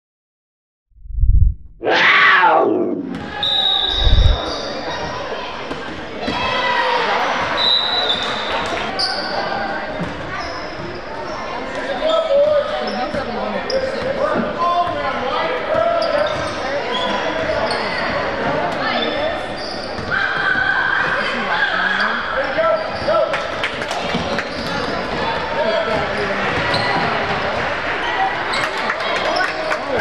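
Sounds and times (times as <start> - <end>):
sneakers squeaking: 10.0 - 11.4, 15.9 - 18.2, 25.8 - 27.4.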